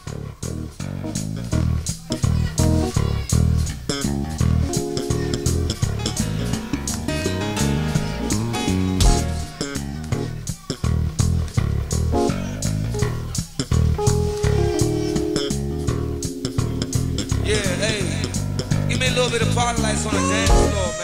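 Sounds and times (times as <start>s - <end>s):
bass guitar line: 0.0s - 21.0s
guitar: 0.0s - 21.0s
drums and percussion: 7.4s - 9.8s.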